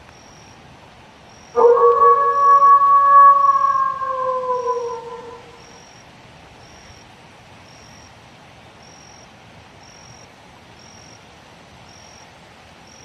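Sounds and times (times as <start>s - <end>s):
dog howling: 1.6s - 5.6s.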